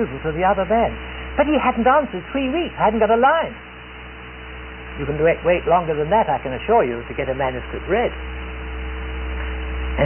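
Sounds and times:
electrical mains hum: 0.0 - 10.0.

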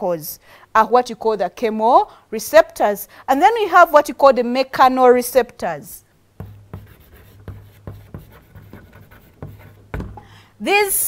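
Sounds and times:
chalk tapping and scratching: 6.4 - 10.2.

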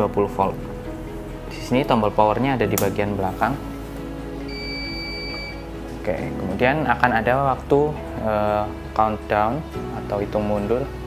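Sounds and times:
background music: 0.0 - 11.0
high-pitched electronic beep: 4.5 - 5.6.

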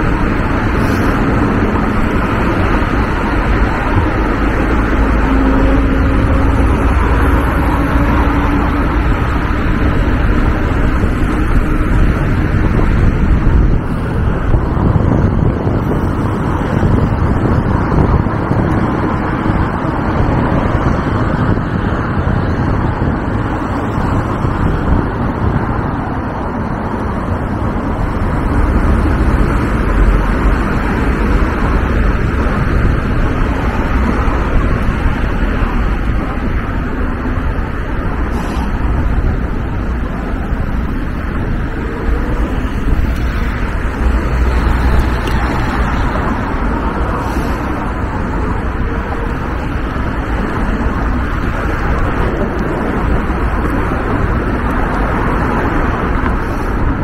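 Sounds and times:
car traffic: 0.0 - 57.0
wind on microphone: 0.0 - 57.0.

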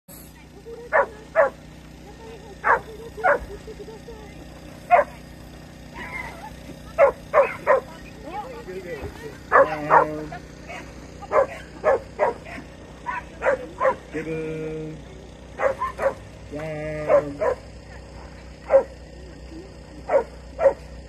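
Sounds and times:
small dog barking: 0.9 - 1.6, 2.6 - 3.4, 4.9 - 5.2, 7.0 - 7.9, 9.5 - 14.1, 15.6 - 16.2, 17.0 - 17.6, 18.6 - 19.0, 20.1 - 20.9.

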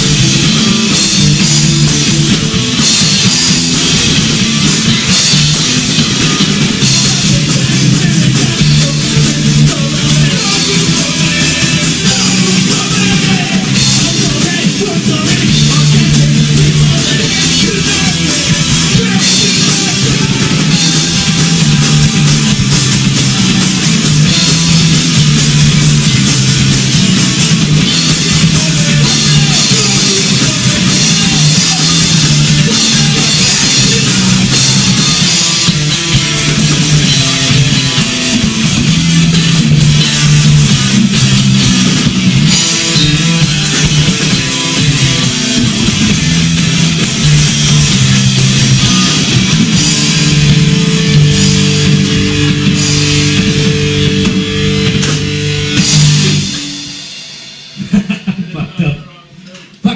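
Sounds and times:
punk rock band playing: 0.0 - 59.9.

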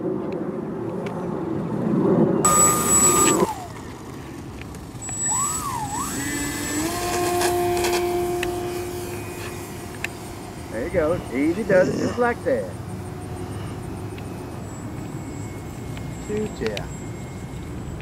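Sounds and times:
low buzz: 2.1 - 18.0
model plane motor whining: 2.4 - 18.0.

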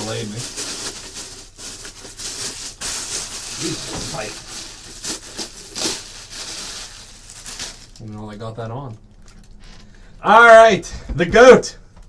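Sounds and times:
packaging wrap crinkling: 0.0 - 9.9.

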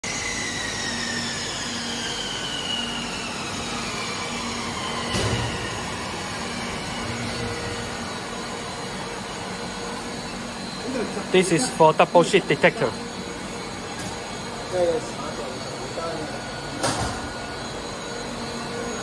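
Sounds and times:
faint high whines falling in pitch: 0.0 - 19.0.

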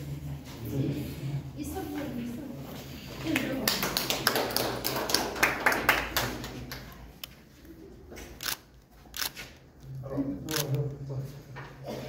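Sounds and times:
group hand clapping: 3.2 - 7.2.

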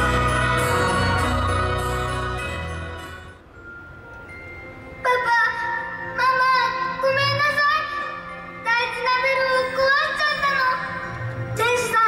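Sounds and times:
soft instrumental accompaniment: 0.0 - 12.0.

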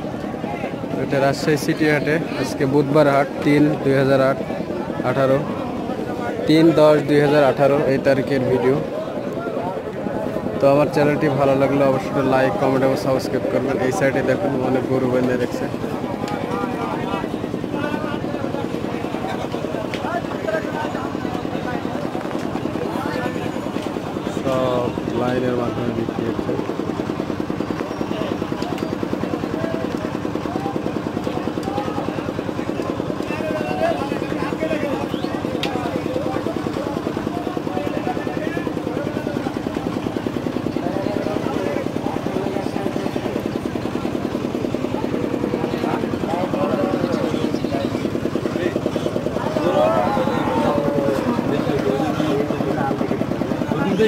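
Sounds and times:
chatter of many voices: 0.0 - 54.0
engine running: 0.0 - 54.0.

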